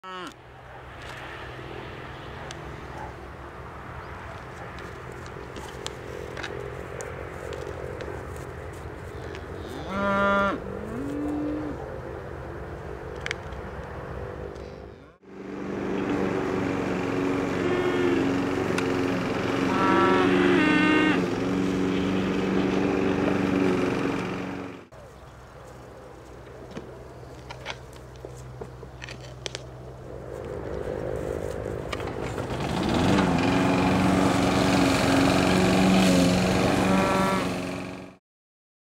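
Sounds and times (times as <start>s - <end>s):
cattle mooing: 0.0s - 0.4s, 9.6s - 11.8s, 17.5s - 18.5s, 19.6s - 22.2s, 36.7s - 37.6s.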